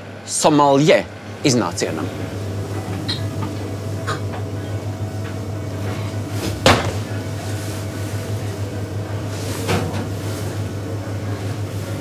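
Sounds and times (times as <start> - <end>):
low droning hum: 1.0 - 12.0.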